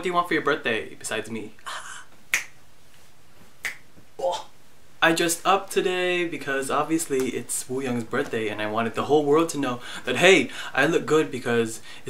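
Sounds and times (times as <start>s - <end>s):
finger snap: 2.3s - 2.6s, 3.6s - 3.9s.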